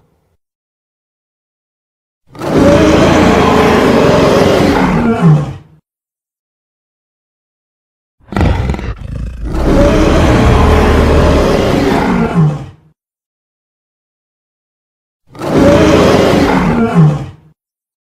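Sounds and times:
monster roar: 0:02.3 - 0:05.6, 0:08.2 - 0:12.9, 0:15.3 - 0:17.4.

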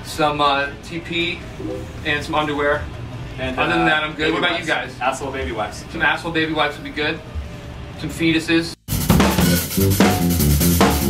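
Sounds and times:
electric guitars playing a riff: 0:08.9 - 0:11.0.

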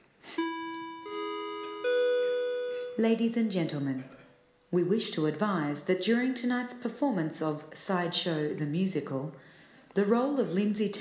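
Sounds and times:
rising public-address chime: 0:00.4 - 0:03.5.

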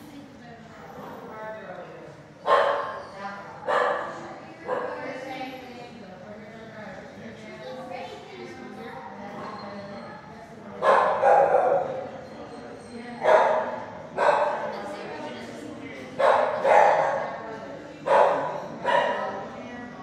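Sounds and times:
dogs barking with echo: 0:02.4 - 0:03.0, 0:03.7 - 0:05.0, 0:10.8 - 0:12.1, 0:13.2 - 0:14.7, 0:16.2 - 0:17.3, 0:18.0 - 0:19.4.

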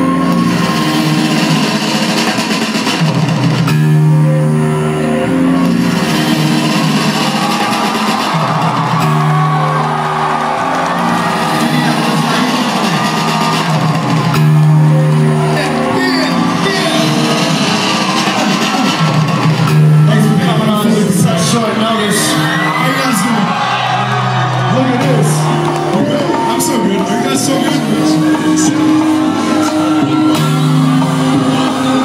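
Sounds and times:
crowd voices: 0:00.0 - 0:32.0
loud hip-hop music through pa: 0:00.0 - 0:32.0.

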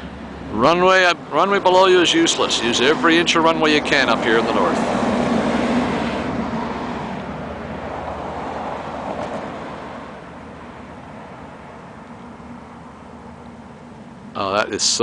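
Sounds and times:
turboprop airliner taking off: 0:00.0 - 0:11.1.

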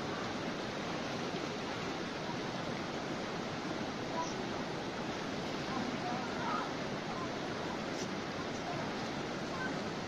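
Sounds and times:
stream rushing over stones: 0:00.0 - 0:10.0.

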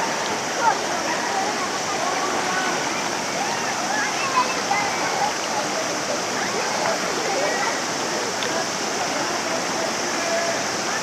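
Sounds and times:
river water rushing over rocks: 0:00.0 - 0:11.0.

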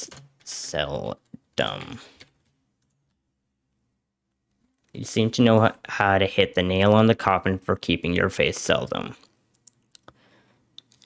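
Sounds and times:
person speaking: 0:00.0 - 0:02.4, 0:04.8 - 0:10.1.

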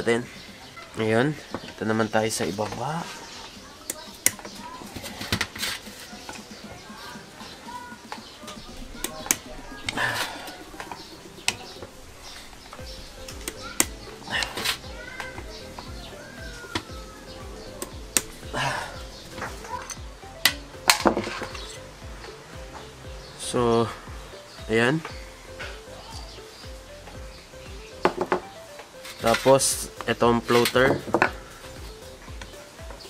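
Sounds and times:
background music with steady beat: 0:00.0 - 0:33.0.

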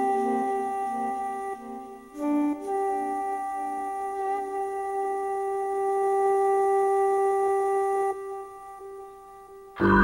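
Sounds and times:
synthesizer holding long note: 0:09.6 - 0:10.0.

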